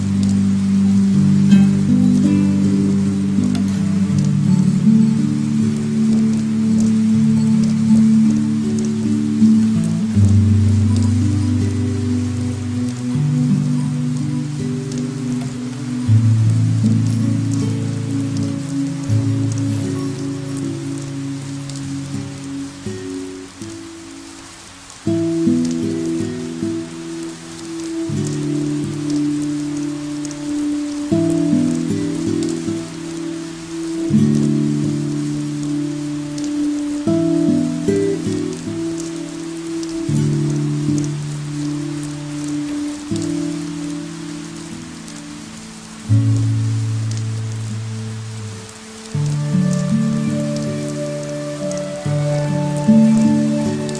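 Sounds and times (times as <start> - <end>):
slow ambient music: 0.0 - 53.9
steady rain falling: 0.0 - 53.9.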